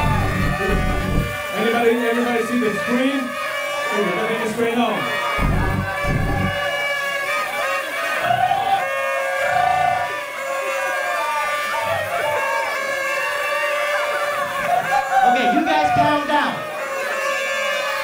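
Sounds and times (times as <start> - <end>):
low thuds: 0.0 - 1.4, 5.4 - 6.6
paper party horns blowing: 0.0 - 4.5, 5.2 - 7.9, 8.8 - 15.0, 16.8 - 18.0
crowd shouting and cheering: 0.0 - 18.0.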